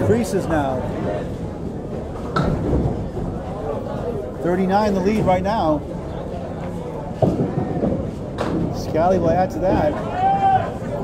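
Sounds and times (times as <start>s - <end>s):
balls rolling on wooden lanes: 6.6s - 10.1s.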